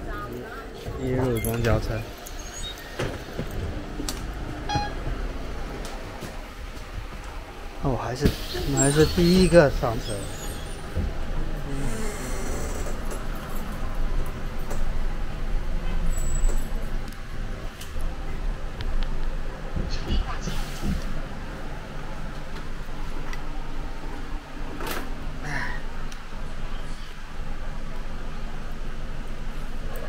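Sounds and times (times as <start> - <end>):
bus cabin rumble: 0.0 - 30.0.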